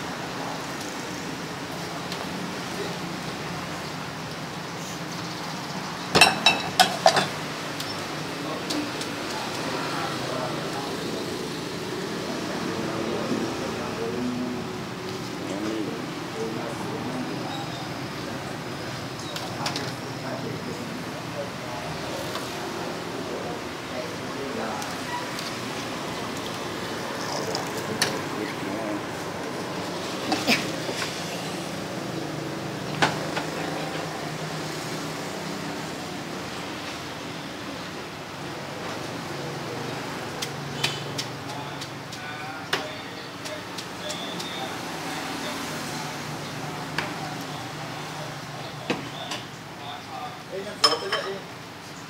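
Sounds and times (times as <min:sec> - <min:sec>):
traffic-like rumble: 0:00.0 - 0:52.0
ceramic tableware clinking: 0:06.2 - 0:07.4, 0:50.8 - 0:51.4.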